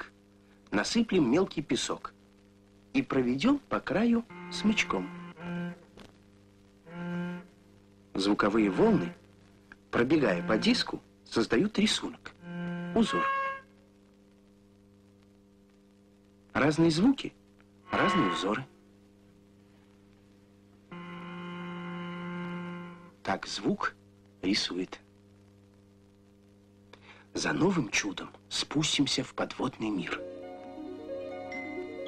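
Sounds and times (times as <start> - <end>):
low bowed note: 4.2 - 5.9, 6.9 - 7.5, 8.2 - 9.2, 10.0 - 10.8, 12.4 - 13.7, 17.9 - 18.7, 20.9 - 23.1.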